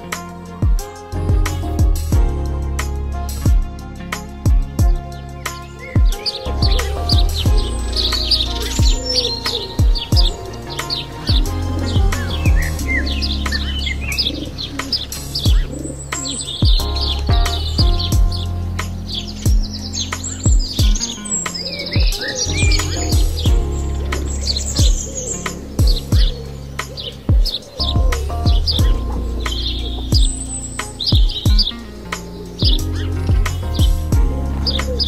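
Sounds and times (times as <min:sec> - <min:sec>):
background music with bass and beat: 0:00.0 - 0:35.0
birds chirping: 0:00.0 - 0:35.0.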